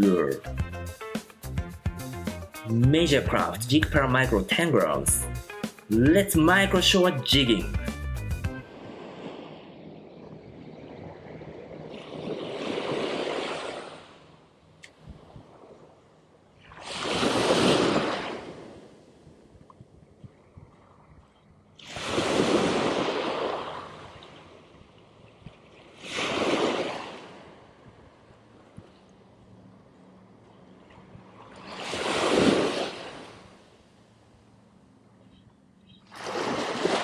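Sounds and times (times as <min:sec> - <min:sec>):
small surf breaking on beach: 0:08.6 - 0:14.4, 0:16.6 - 0:19.2, 0:21.8 - 0:24.7, 0:25.6 - 0:27.8, 0:31.2 - 0:33.6, 0:36.1 - 0:37.0.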